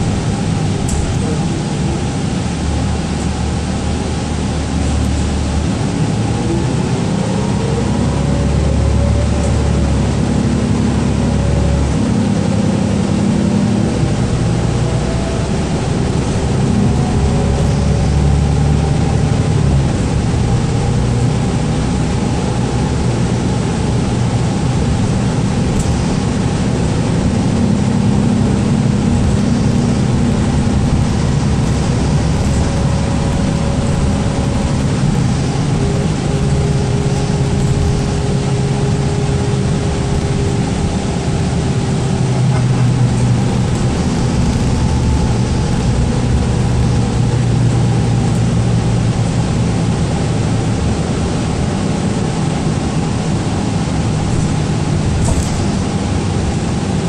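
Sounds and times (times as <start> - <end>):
bus engine drone: 0.0 - 57.0
road noise: 0.0 - 57.0.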